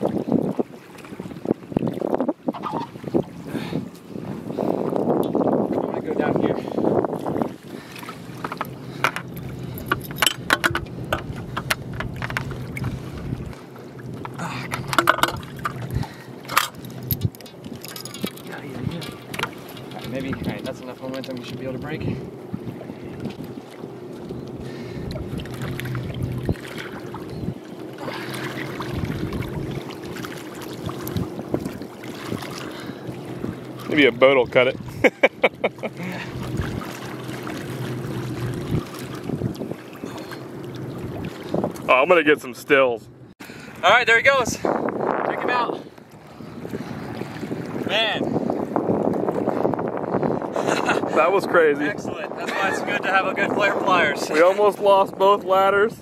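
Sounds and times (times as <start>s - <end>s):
water sloshing: 0.0s - 55.6s
steady low hum: 6.2s - 43.8s
sharp clicks and knocks: 8.4s - 12.5s, 14.8s - 15.8s.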